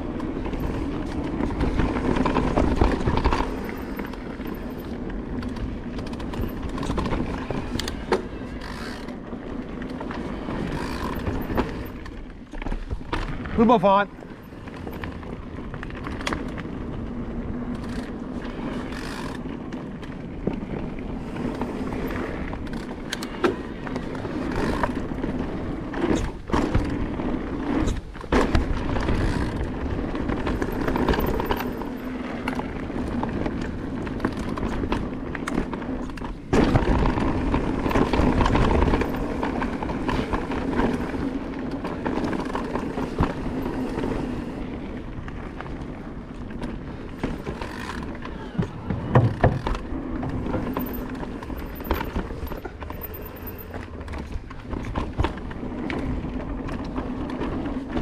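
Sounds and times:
bike knocking and rattling: 0.0s - 58.0s
bike tyres crunching over dirt: 0.0s - 58.0s.

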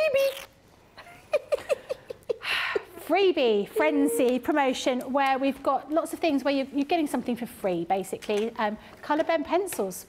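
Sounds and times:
woman giggling: 1.0s - 3.0s.

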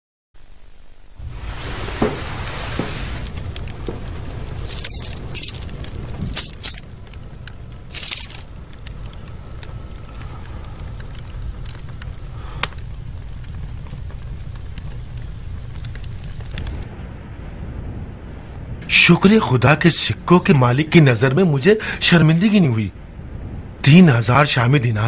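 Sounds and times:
low steady hum: 0.4s - 25.0s
coins clinking: 4.6s - 6.8s, 7.9s - 8.5s.

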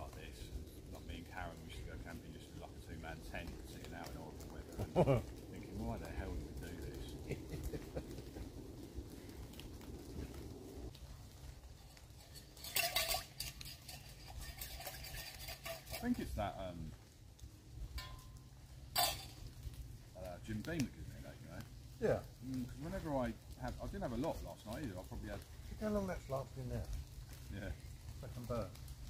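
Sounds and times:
low steady rumble: 0.0s - 29.0s
cookware clinking: 12.2s - 16.2s, 19.0s - 19.4s.

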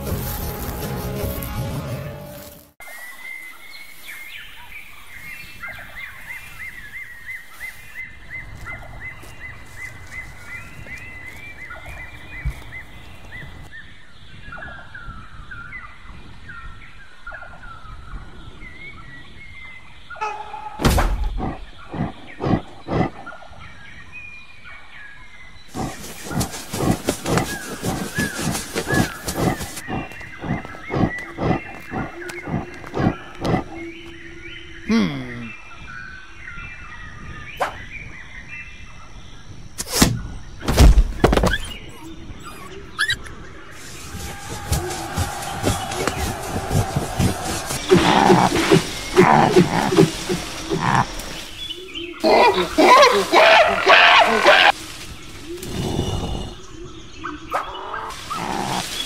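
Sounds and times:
outdoor ambience: 0.0s - 59.0s
animal chirping calls: 41.4s - 44.0s, 47.2s - 54.8s.

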